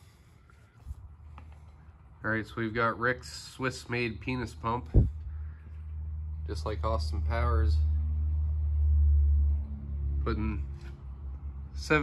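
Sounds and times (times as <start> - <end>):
steady low rumble: 2.3 - 12.0.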